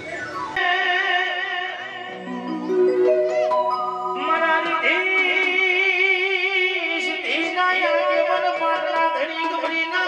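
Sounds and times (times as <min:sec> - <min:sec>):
man singing held note: 0:04.0 - 0:06.6.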